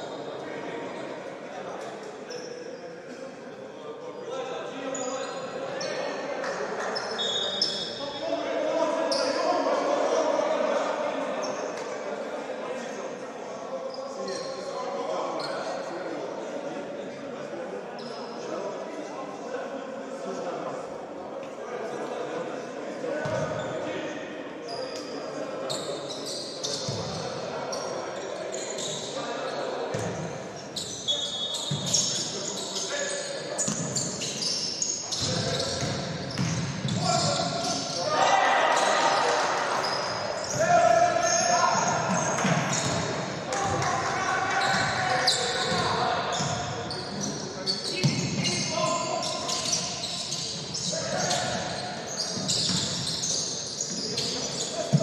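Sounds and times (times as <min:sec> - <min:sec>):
players calling out: 0:30.1 - 0:55.0.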